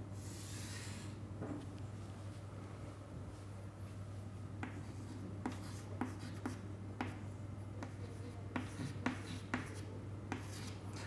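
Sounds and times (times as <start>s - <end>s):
steady low hum: 0.0s - 11.0s
chalk tapping and scratching: 4.6s - 11.0s.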